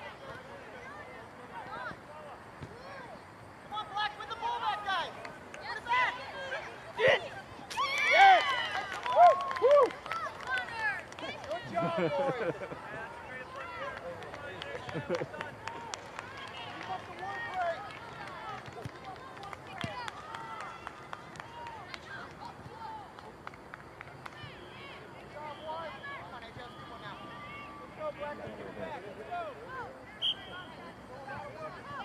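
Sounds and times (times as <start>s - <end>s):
people shouting outdoors: 2.8s - 14.0s.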